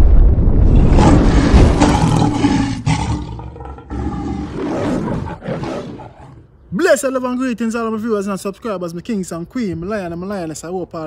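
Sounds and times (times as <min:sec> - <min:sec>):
lion roar: 0:00.6 - 0:06.5.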